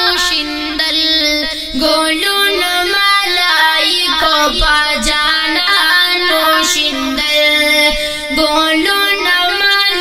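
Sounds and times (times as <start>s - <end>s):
boy singing: 0.0s - 10.0s.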